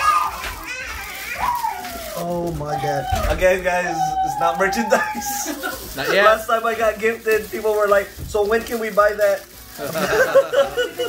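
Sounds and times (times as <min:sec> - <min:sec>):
children calling out: 0:00.0 - 0:06.0.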